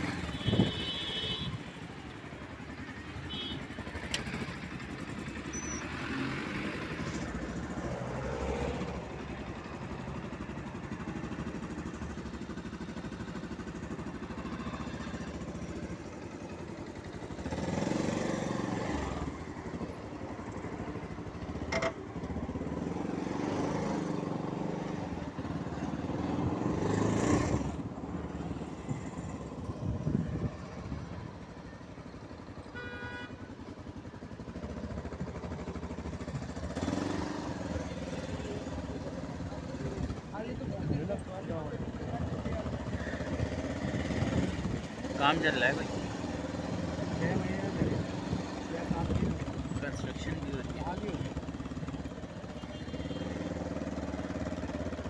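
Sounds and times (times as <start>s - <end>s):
motorcycle engine running: 0.0s - 55.0s
cars passing close by: 22.7s - 30.5s, 36.6s - 38.6s.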